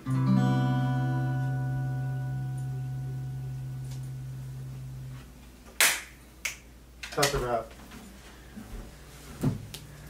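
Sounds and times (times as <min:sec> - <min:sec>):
acoustic guitar chord ringing: 0:00.0 - 0:05.3
sharp hand smacks: 0:05.8 - 0:07.3.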